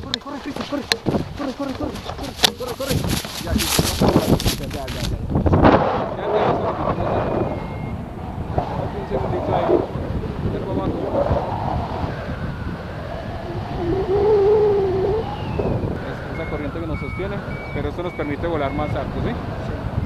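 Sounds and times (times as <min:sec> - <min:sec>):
voices: 0:00.0 - 0:05.4, 0:06.0 - 0:20.0
wind rushing over microphone: 0:00.0 - 0:20.0
short high beeps: 0:07.2 - 0:08.0, 0:16.0 - 0:19.0
wavering held vocal note: 0:12.4 - 0:18.1.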